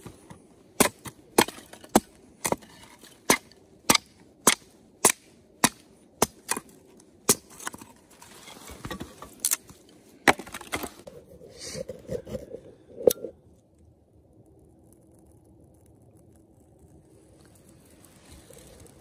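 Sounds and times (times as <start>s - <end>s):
hatchet chopping wood: 0.8s - 2.6s, 3.2s - 6.7s, 7.3s - 7.8s, 8.9s - 10.9s.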